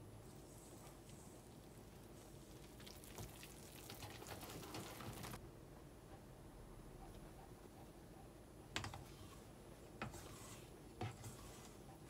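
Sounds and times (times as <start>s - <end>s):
whisk scraping in metal bowl: 10.0s - 12.0s.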